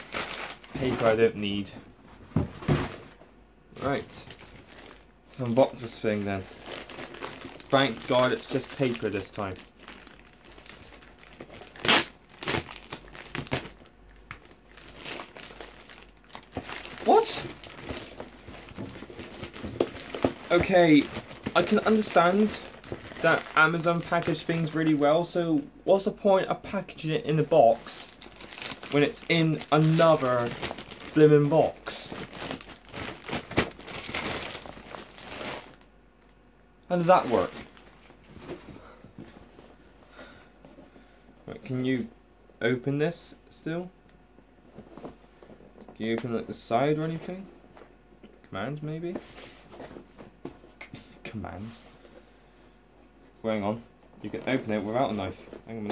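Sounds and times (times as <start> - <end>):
paper crumpling and rustling: 3.8 - 25.1, 27.7 - 35.8, 37.0 - 39.5.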